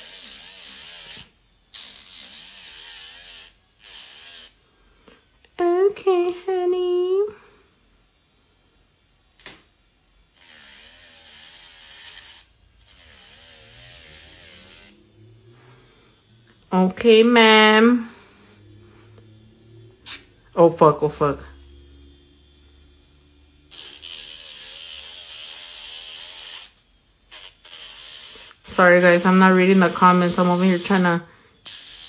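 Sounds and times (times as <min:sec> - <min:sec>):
electric nail drill grinding: 0:00.0 - 0:07.5, 0:08.6 - 0:32.0.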